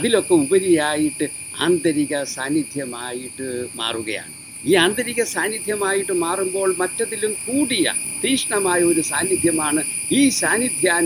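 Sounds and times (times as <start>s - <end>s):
insects chirring: 0.0s - 11.0s
man speaking: 0.0s - 11.0s.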